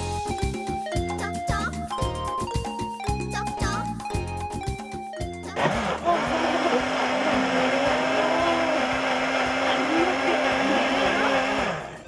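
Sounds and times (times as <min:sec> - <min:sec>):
blender running: 0:05.6 - 0:12.0.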